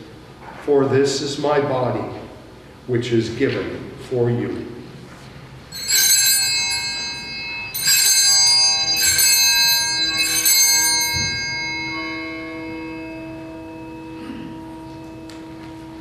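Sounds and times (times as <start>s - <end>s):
altar bells shaking: 5.6s - 16.0s
deep lingering ringing tones: 5.6s - 16.0s.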